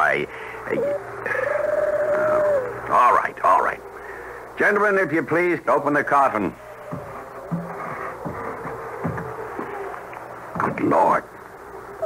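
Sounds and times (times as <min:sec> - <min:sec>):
faint steady tone: 0:00.0 - 0:12.0
coffin lid knocking and creaking: 0:06.8 - 0:10.8.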